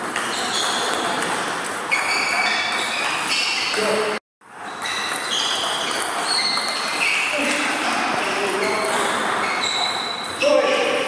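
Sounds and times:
table tennis balls clicking: 0.0 - 4.0, 4.8 - 11.0
high pings and squeaks: 1.9 - 3.9, 4.6 - 10.8.

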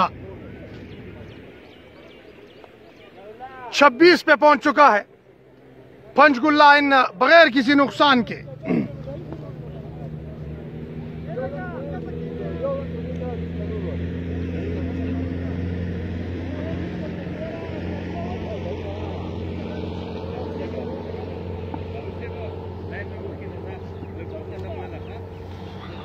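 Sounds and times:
low motor hum: 0.0 - 3.4, 5.0 - 26.0
indistinct voices: 5.8 - 13.8.

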